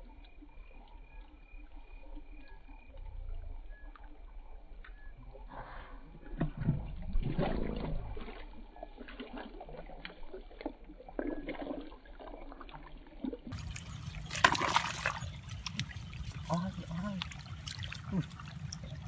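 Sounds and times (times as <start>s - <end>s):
water trickling: 6.2s - 19.0s
hands splashing in muddy water: 13.5s - 19.0s.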